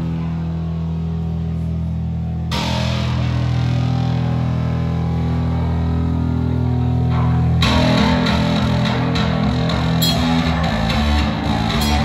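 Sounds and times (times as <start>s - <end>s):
live heavy metal band: 0.0s - 12.0s.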